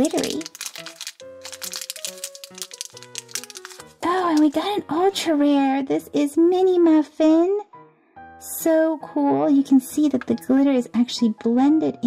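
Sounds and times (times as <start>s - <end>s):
plastic wrapper crinkling: 0.0s - 4.6s
background music with held notes: 0.0s - 12.0s.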